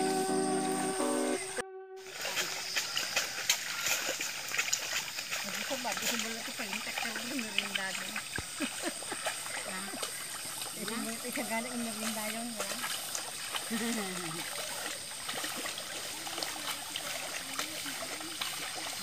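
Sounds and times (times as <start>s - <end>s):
background music: 0.0s - 2.0s
muddy water splashing: 0.0s - 19.0s.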